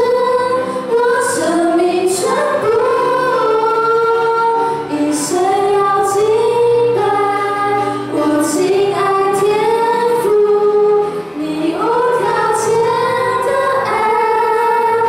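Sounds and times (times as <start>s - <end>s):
upright piano: 0.0s - 15.0s
women singing into microphones: 0.0s - 15.0s.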